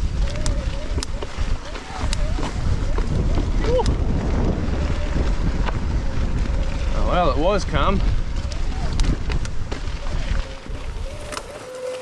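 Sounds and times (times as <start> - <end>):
wind buffeting microphone: 0.0 - 11.7
bike clicks and knocks on rocks: 0.1 - 4.2, 8.0 - 9.9.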